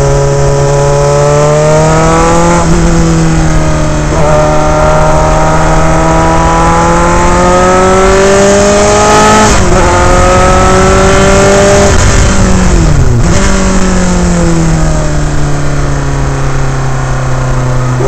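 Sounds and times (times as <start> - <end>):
racing car engine revving: 0.0 - 15.7.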